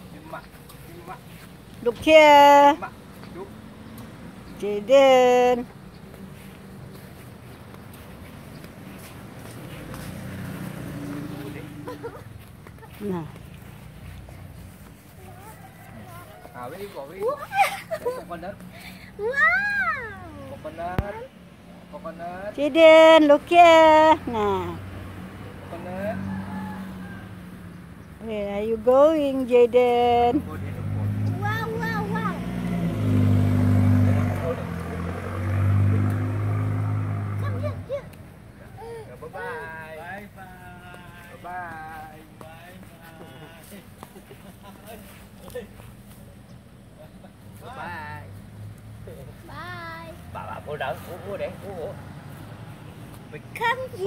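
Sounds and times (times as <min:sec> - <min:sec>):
vehicle engine hum: 0:00.0 - 0:54.0.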